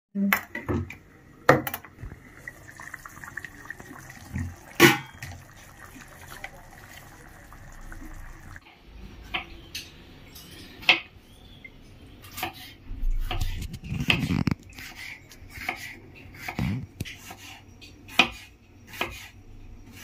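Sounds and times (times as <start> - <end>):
gravy simmering and bubbling: 0.9 - 8.6.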